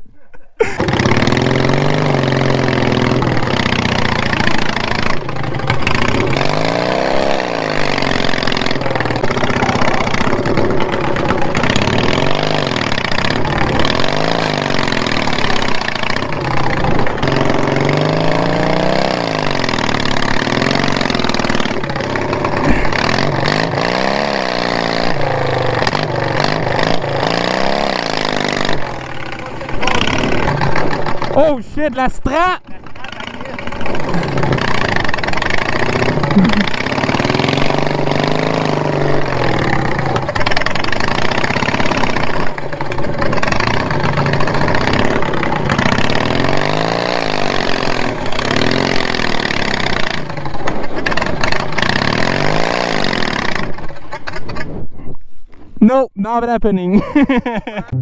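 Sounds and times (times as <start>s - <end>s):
small engine revving: 0.6s - 31.4s, 33.0s - 54.7s.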